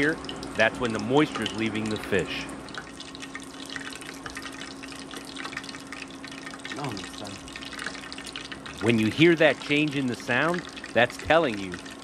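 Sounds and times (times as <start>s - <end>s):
fish deep-frying in oil: 0.0s - 12.0s.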